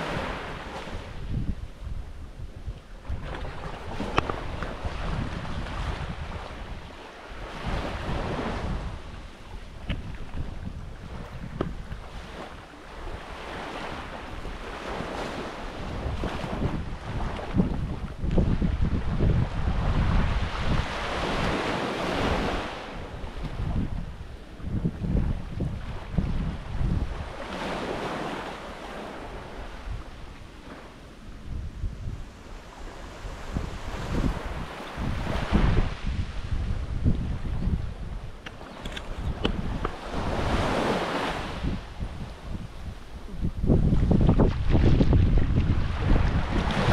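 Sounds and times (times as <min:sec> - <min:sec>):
small waves washing onto beach: 0:00.0 - 0:46.9
wind buffeting microphone: 0:00.0 - 0:46.9.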